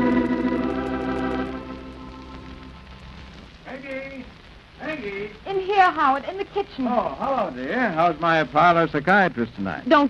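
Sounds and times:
old recording hiss and crackle: 0.0 - 10.0.

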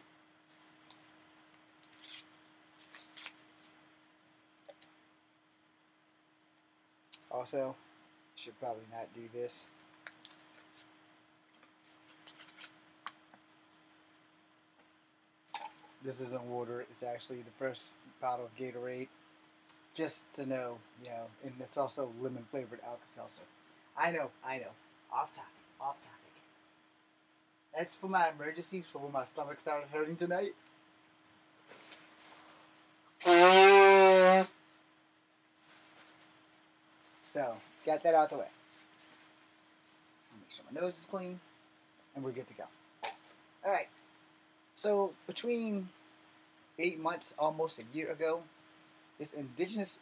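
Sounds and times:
tablet packet being torn open: 1.8 - 3.4
man blowing nose: 33.2 - 34.6.

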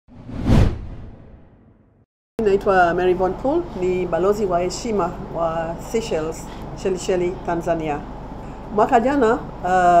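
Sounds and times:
deep whoosh: 0.1 - 2.0.

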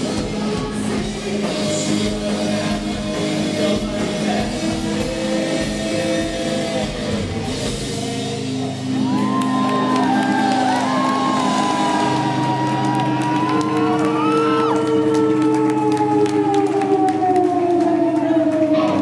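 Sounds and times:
rock band sustained chord: 0.0 - 19.0
crowd whooping and shouting: 8.5 - 19.0.

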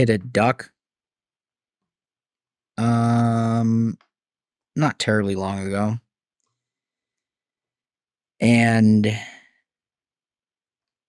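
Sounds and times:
man speaking: 0.0 - 0.7, 2.8 - 4.0, 4.8 - 6.0, 8.4 - 9.4.

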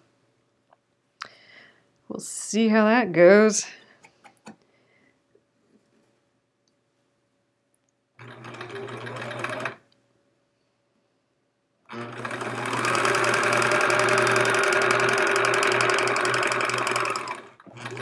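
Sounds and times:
electric sewing machine stitching: 8.2 - 9.8, 11.9 - 18.0.

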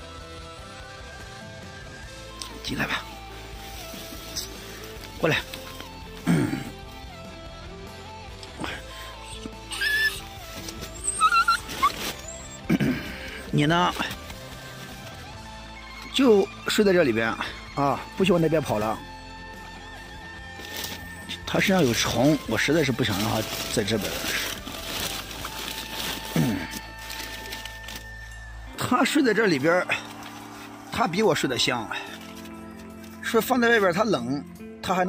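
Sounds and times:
background music: 0.0 - 35.0
small dog whimpering: 9.2 - 13.5
plastic sheet crinkling: 21.8 - 28.3.

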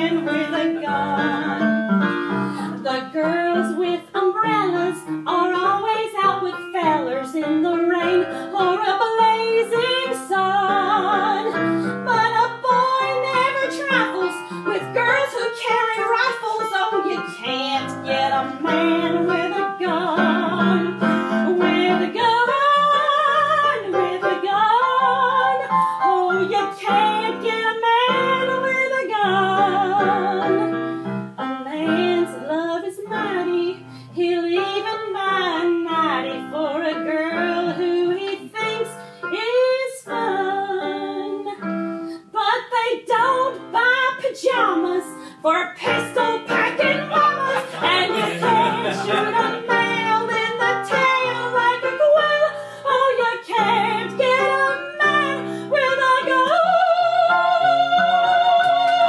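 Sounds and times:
woman singing with vibrato: 0.0 - 30.8, 31.6 - 59.0
piano accompaniment: 0.0 - 59.0.

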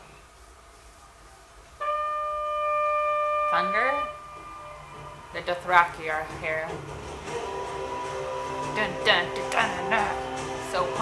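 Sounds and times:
long horn blast: 1.8 - 11.0.

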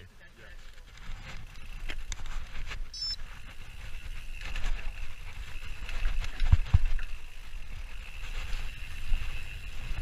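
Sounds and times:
bike rattling and clicking: 0.0 - 10.0.

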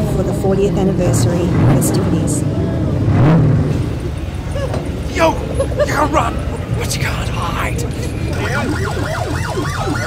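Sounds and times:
outdoor crowd noise: 0.0 - 10.0
vehicle engine revving: 1.0 - 6.8.

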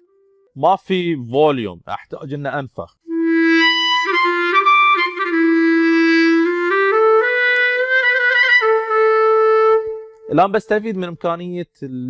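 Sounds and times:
clarinet playing smooth phrase: 3.1 - 10.5.

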